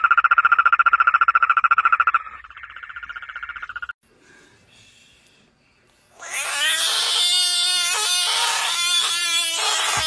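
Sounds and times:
frog wailing scream: 0:06.1 - 0:10.0.

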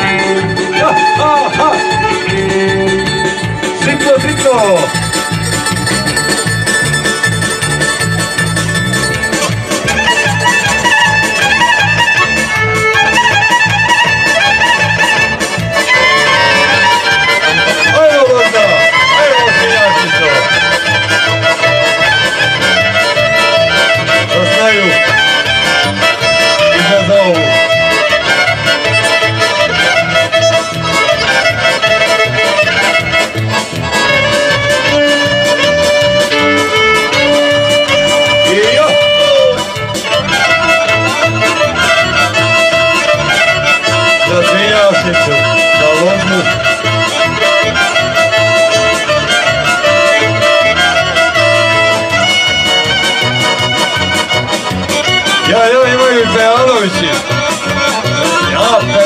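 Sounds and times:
folk dance music: 0:00.0 - 0:59.0.

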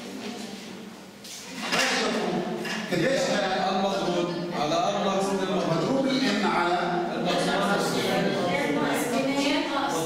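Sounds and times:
man lecturing: 0:01.8 - 0:08.4.

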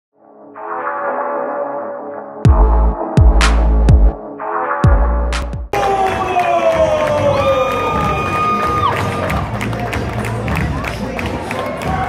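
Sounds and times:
entrance music over arena speakers: 0:00.4 - 0:12.0
crowd cheering: 0:05.7 - 0:12.0.

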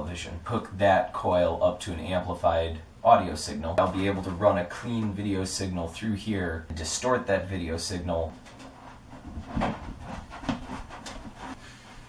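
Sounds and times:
shuffling: 0:08.2 - 0:12.0
footsteps on tiled floor: 0:08.4 - 0:12.0
television knocking on tiled floor: 0:09.2 - 0:11.0.

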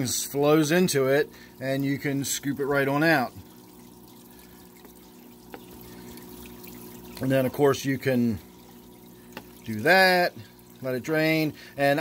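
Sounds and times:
water draining and dripping: 0:00.0 - 0:12.0.

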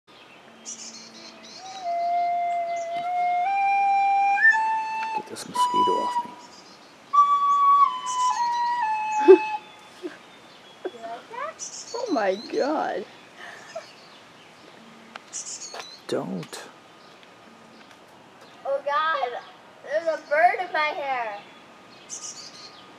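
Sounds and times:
bird chirps: 0:00.1 - 0:22.9
flute long held notes: 0:01.1 - 0:06.4, 0:07.1 - 0:09.9.

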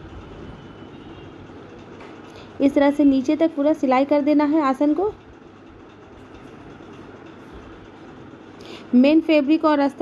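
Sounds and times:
sewing machine running: 0:00.0 - 0:10.0.

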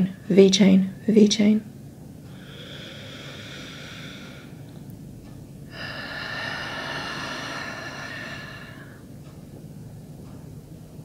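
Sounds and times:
person breathing slowly: 0:02.3 - 0:04.9, 0:05.7 - 0:09.1.

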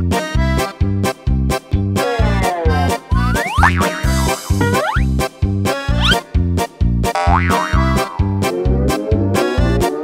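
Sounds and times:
bouncy children's music: 0:00.0 - 0:10.0
cartoon boing effects: 0:03.2 - 0:05.1, 0:07.2 - 0:08.5.

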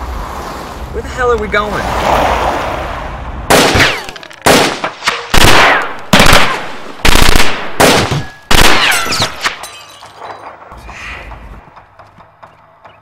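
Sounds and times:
loud sudden bangs: 0:03.5 - 0:09.5.

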